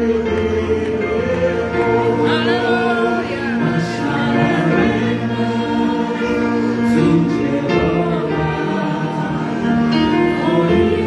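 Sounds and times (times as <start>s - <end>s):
gospel singing: 0.0s - 11.0s
held chords: 0.0s - 11.0s.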